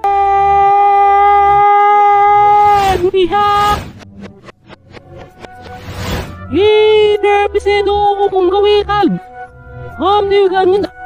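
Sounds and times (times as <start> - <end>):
man yelling long note: 0.0 - 3.7.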